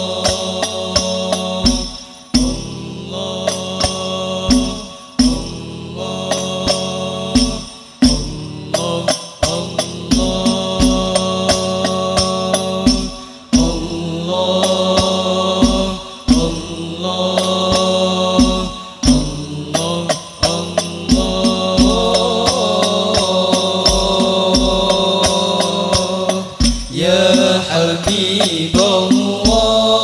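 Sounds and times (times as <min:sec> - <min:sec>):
group singing long held notes: 0:00.0 - 0:30.0
frame drum strokes: 0:17.4 - 0:29.9.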